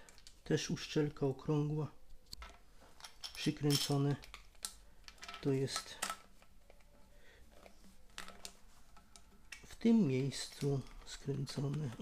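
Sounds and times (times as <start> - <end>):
plastic parts clicking and rubbing: 2.3 - 12.0.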